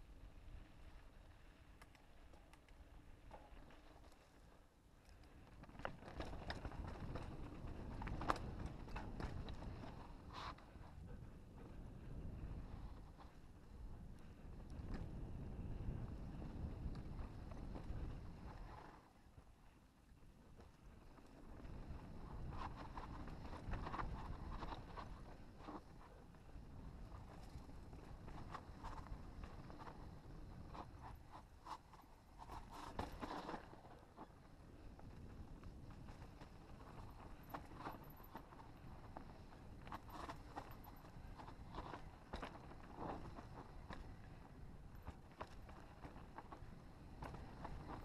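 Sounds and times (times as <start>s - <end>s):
wind and tyre rumble: 0.0s - 48.0s.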